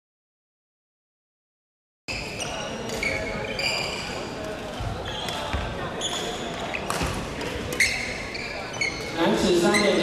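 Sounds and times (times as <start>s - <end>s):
murmur of voices: 2.1s - 10.0s
sneakers squeaking on wooden floor: 2.1s - 10.0s.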